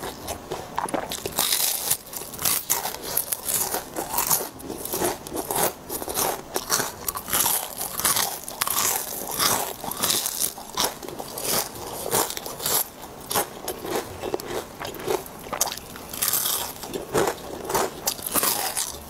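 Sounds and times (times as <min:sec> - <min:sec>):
crunching and chewing fried food: 0:00.0 - 0:19.0.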